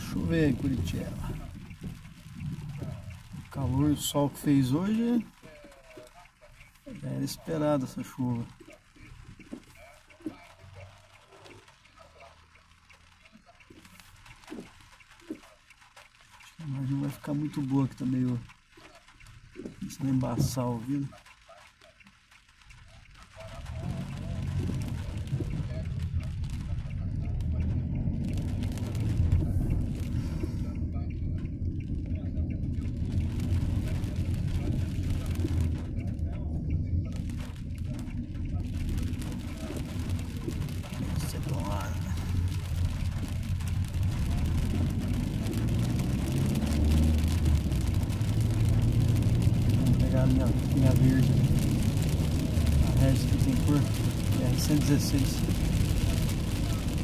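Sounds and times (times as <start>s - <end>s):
car engine and tyre rumble: 0.0s - 57.0s
rain and spray hiss: 0.0s - 57.0s.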